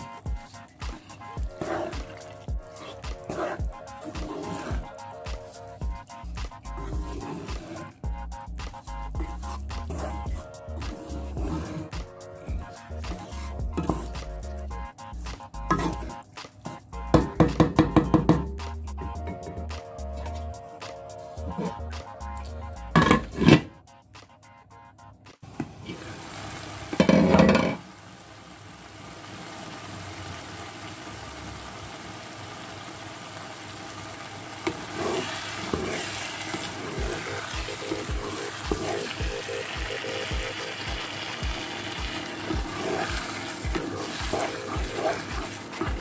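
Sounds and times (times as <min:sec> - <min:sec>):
sauce sizzling in a frying pan: 0:00.0 - 0:16.2, 0:25.6 - 0:46.0
wooden spatula scraping pan: 0:00.9 - 0:05.0, 0:06.7 - 0:08.0, 0:10.9 - 0:12.0, 0:13.1 - 0:14.3, 0:15.7 - 0:16.2, 0:21.4 - 0:21.9, 0:22.9 - 0:23.7, 0:34.6 - 0:39.1, 0:42.2 - 0:46.0.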